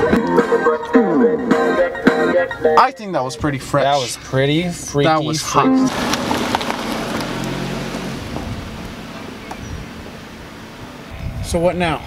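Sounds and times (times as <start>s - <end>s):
car driving away: 4.0s - 11.2s.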